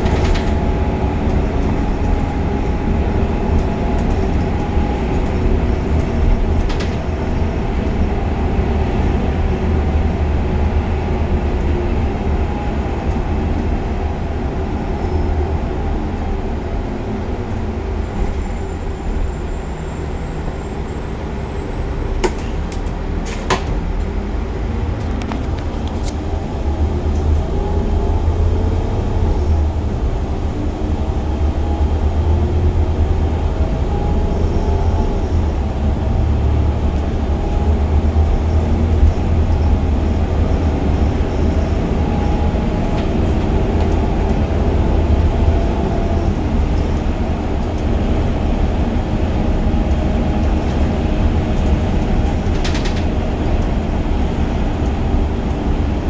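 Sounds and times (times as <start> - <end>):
bus engine rumble: 0.0 - 56.0.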